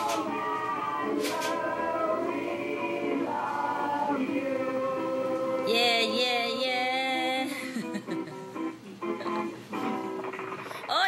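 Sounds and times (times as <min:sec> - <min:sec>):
group singing in chorus: 0:00.0 - 0:06.7.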